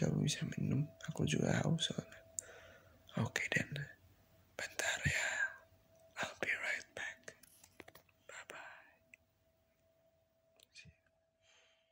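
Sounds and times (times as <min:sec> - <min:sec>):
faint steady tone: 0:00.0 - 0:11.9
soft whispering: 0:03.1 - 0:04.0, 0:04.6 - 0:09.2, 0:10.6 - 0:11.1.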